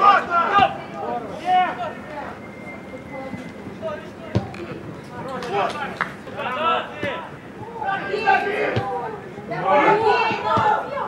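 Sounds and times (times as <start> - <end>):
players shouting: 0.0 - 2.4, 5.3 - 11.0.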